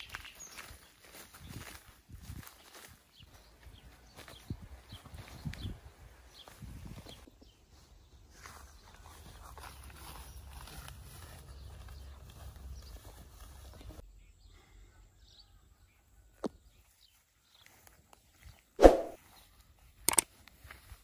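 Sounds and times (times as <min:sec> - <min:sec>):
footsteps through tall grass: 0:00.0 - 0:14.0, 0:16.9 - 0:21.0
stems and leaves brushing: 0:08.3 - 0:14.0.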